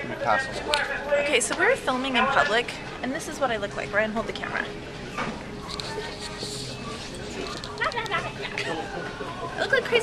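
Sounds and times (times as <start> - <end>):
indistinct voices: 0.0 - 10.0.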